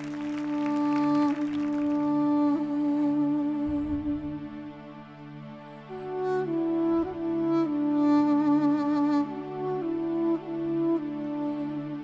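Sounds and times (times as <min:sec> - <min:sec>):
wind instrument long note: 0:00.0 - 0:12.0.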